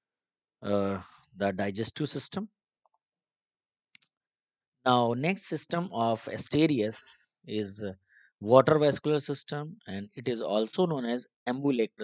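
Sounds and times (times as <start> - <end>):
man speaking: 0.6 - 2.5, 4.9 - 12.0.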